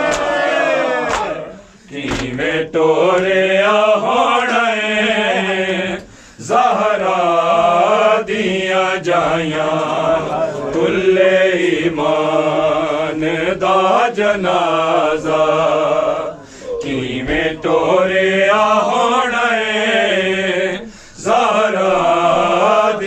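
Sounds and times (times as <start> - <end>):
men chanting a lament: 0.0 - 23.0.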